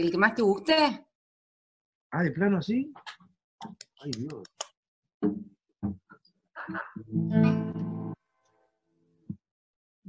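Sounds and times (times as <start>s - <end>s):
acoustic guitar strum: 7.1s - 8.2s.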